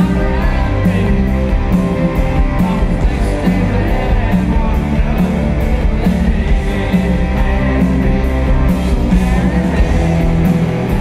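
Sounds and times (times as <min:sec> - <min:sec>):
man singing: 0:00.0 - 0:11.0
rock band playing: 0:00.0 - 0:11.0.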